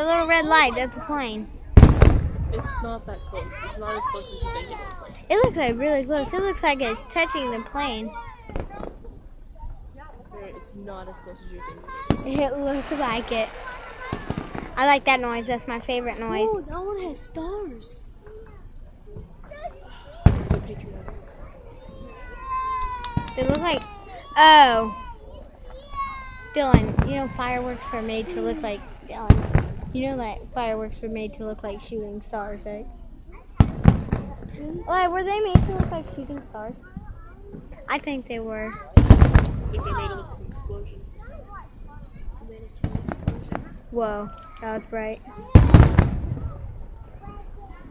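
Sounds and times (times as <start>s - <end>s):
fireworks bursting: 0.0s - 10.4s, 11.1s - 19.5s, 20.2s - 32.7s, 33.5s - 47.9s
distant firework bang: 1.7s - 2.8s, 11.9s - 16.1s, 20.2s - 24.2s, 26.0s - 30.1s, 33.6s - 34.6s, 39.0s - 40.3s, 45.5s - 47.4s
high falling tone: 12.0s - 16.7s.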